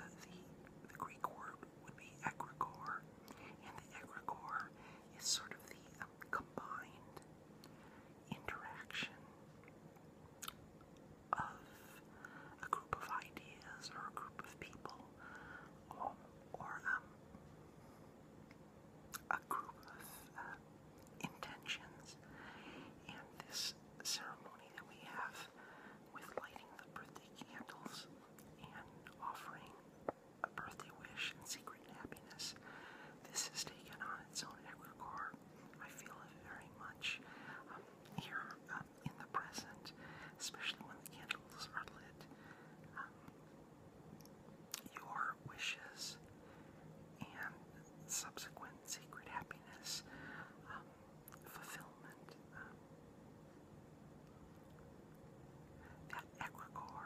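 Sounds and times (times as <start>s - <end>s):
close whispering: 0.0s - 7.3s, 8.2s - 9.3s, 11.3s - 17.2s, 19.2s - 43.3s, 44.8s - 46.3s, 47.2s - 52.8s, 55.8s - 57.0s
wet mouth clicks: 10.4s - 10.6s.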